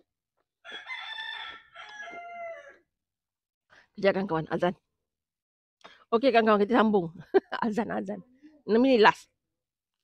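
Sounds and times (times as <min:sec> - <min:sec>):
rooster crowing: 0:00.6 - 0:02.9.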